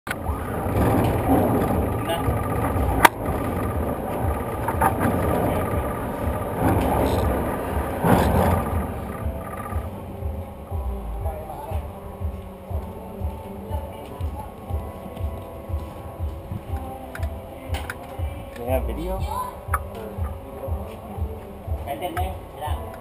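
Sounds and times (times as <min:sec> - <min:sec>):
general clatter: 0:00.1 - 0:10.0
low rumble: 0:00.1 - 0:21.8
indistinct voices: 0:00.1 - 0:23.0.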